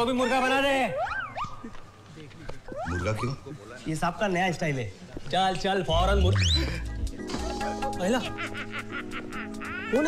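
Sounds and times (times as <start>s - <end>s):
man speaking: 5.5s - 6.9s.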